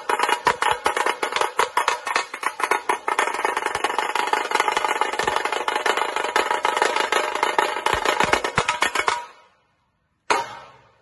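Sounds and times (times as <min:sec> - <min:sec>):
drums struck with cane sticks: 0:00.0 - 0:09.5.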